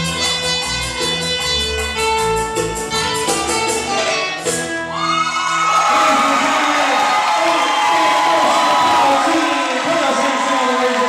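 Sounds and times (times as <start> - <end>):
dance music: 1.6 - 11.0
crowd cheering and whooping: 4.9 - 11.0.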